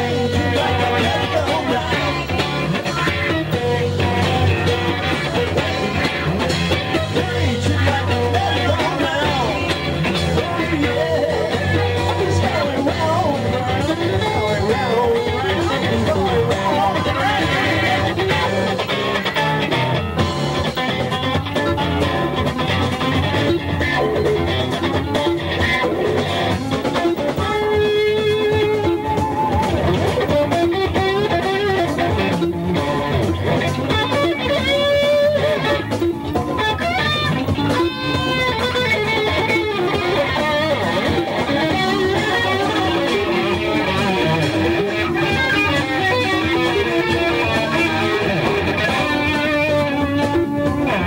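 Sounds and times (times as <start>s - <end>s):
electric guitar solo: 0.0s - 51.0s
live blues band: 0.0s - 51.0s.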